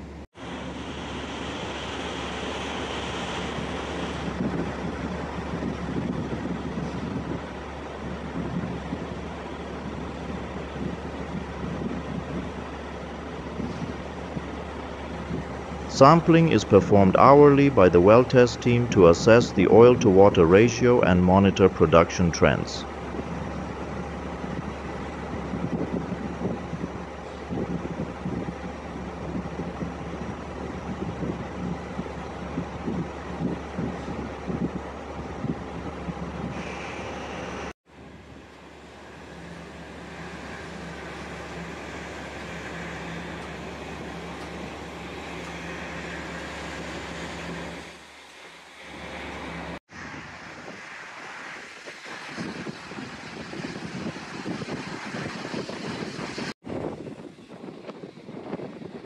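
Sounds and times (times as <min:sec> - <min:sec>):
machinery hum: 0:00.0 - 0:56.5
wind gusting on microphone: 0:00.4 - 0:48.0, 0:49.0 - 0:59.0
flare burner rushing: 0:38.4 - 0:59.0.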